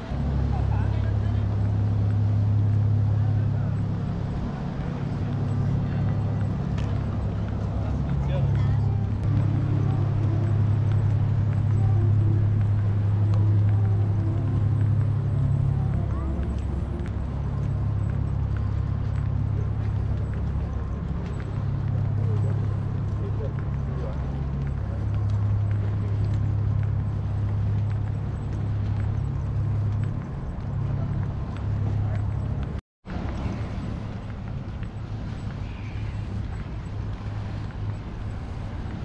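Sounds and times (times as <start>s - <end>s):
faint voices talking: 0.0s - 39.0s
steady low rumble: 0.0s - 39.0s.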